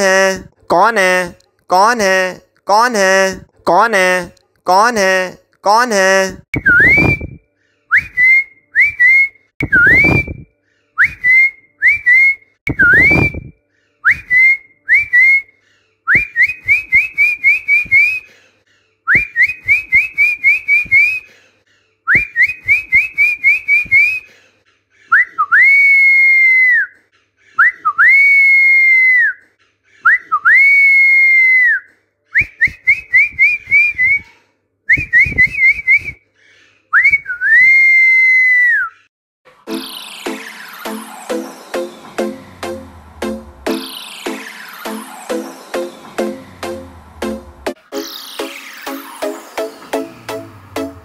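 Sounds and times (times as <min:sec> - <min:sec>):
person whistling: 0:06.6 - 0:15.5, 0:16.1 - 0:18.3, 0:19.1 - 0:21.3, 0:22.1 - 0:24.3, 0:30.1 - 0:34.3, 0:34.9 - 0:36.2, 0:36.9 - 0:39.1.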